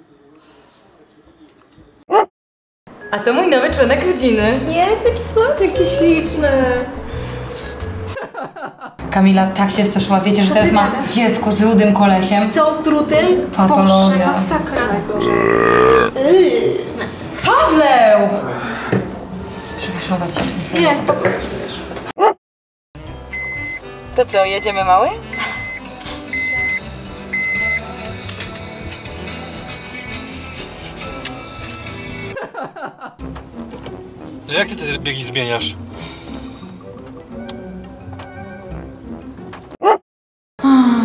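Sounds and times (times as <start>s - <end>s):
background music: 2.9s - 8.2s, 23.0s - 32.6s, 33.2s - 39.8s
person burping: 15.0s - 16.2s.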